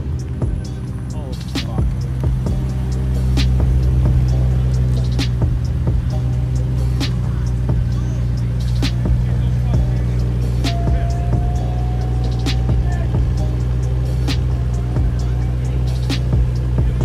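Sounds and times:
background music with beat: 0.0s - 17.0s
car engine running at low speed: 0.0s - 17.0s.

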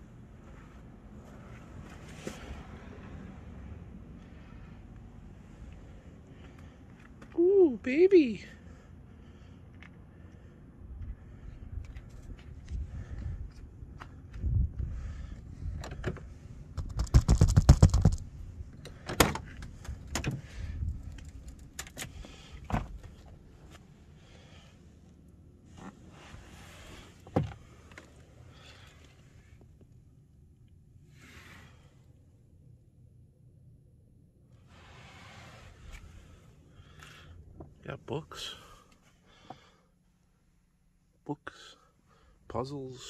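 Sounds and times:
scattered clicks and knocks: 16.8s - 18.2s.

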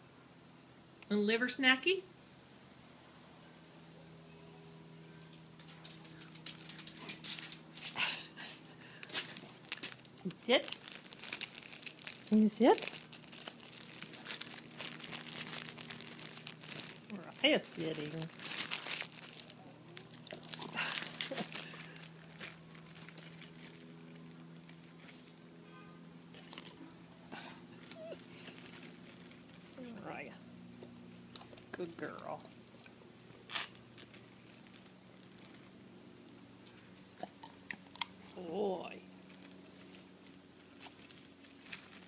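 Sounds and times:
faint hum: 0.0s - 42.0s
light clicks and rustling: 5.2s - 10.0s
dog whining: 27.4s - 29.1s.

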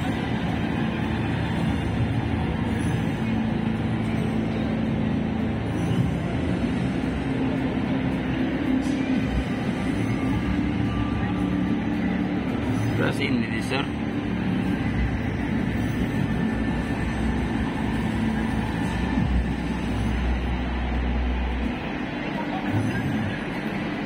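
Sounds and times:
background music: 0.0s - 24.0s
crowd talking: 0.0s - 24.0s.

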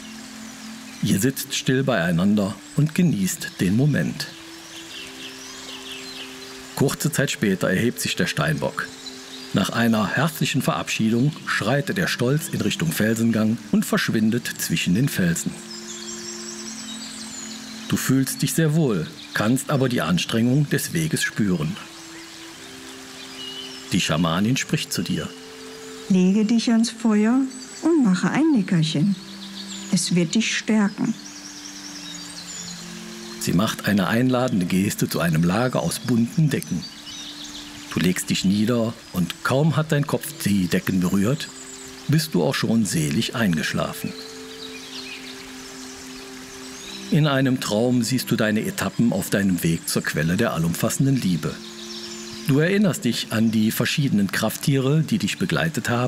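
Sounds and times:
soft music with low held notes: 0.0s - 56.0s.

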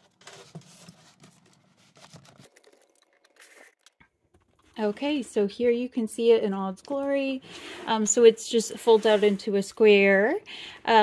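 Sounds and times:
vinyl case rustling and crinkling: 0.0s - 2.8s.

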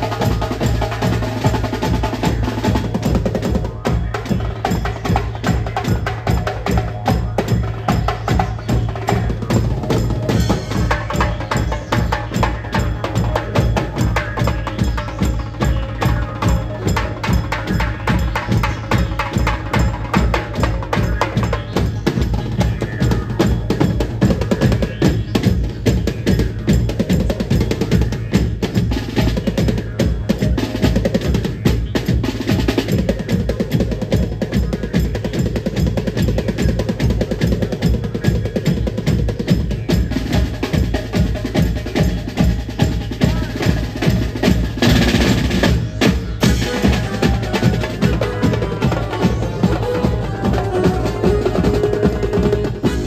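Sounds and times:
band drumming fast beat: 0.0s - 53.0s.

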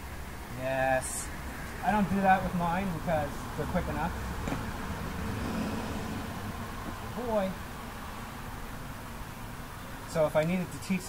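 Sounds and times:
car driving past: 3.4s - 8.5s.

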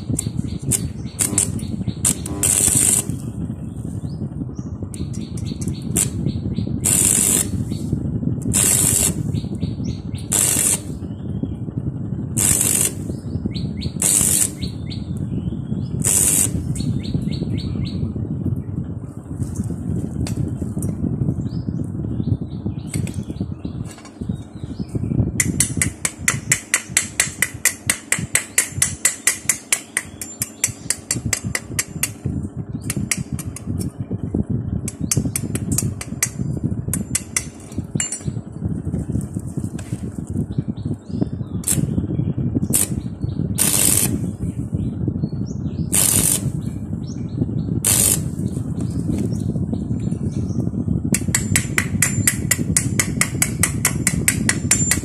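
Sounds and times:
welding arc crackling: 0.1s - 3.3s, 5.5s - 6.2s, 6.8s - 7.6s, 8.5s - 9.3s, 10.3s - 11.0s, 12.4s - 13.1s, 14.0s - 14.7s, 16.0s - 16.6s, 42.7s - 43.0s, 43.6s - 44.2s, 45.9s - 46.5s, 47.8s - 48.3s.

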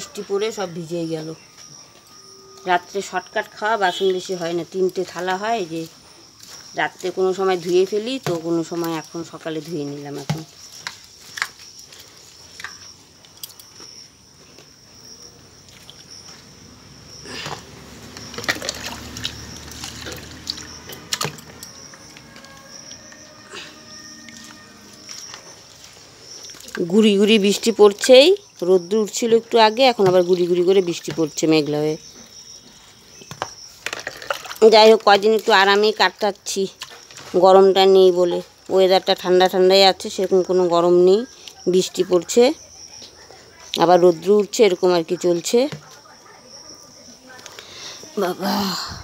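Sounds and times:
high-pitched insect trill: 0.0s - 49.0s
water sloshing and trickling: 15.5s - 38.2s.

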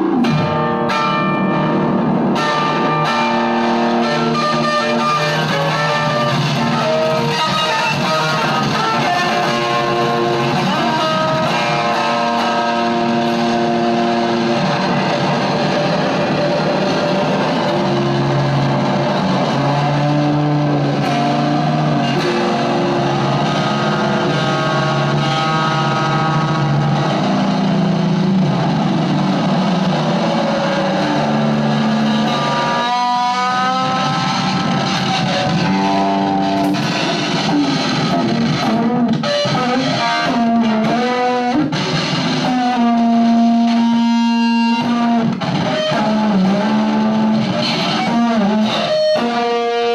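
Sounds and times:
electric guitar noise drones: 0.0s - 49.9s.

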